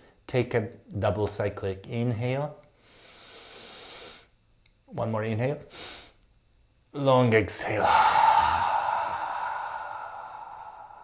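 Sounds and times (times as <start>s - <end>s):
man exhaling long: 7.6s - 11.0s.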